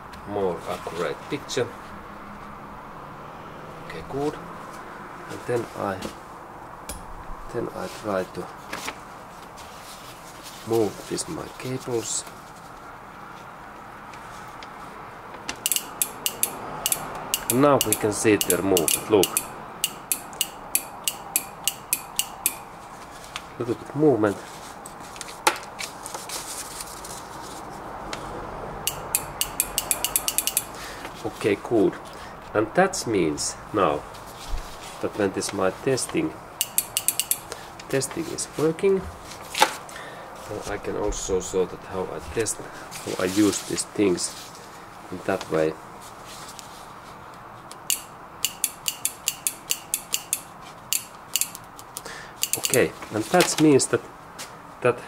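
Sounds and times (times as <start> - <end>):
solenoid clicking: 15.7 - 22.7, 28.9 - 30.8, 36.6 - 37.6, 47.7 - 51.7.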